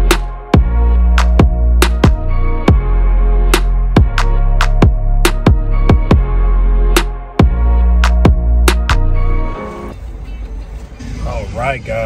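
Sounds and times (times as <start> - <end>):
background music: 0.0 - 12.0
man speaking: 11.2 - 12.0.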